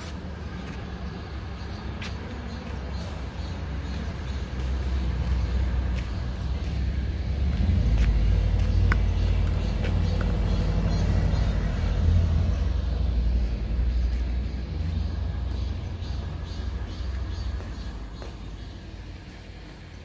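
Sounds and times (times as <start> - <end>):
low outdoor wind rumble: 0.0 - 20.0.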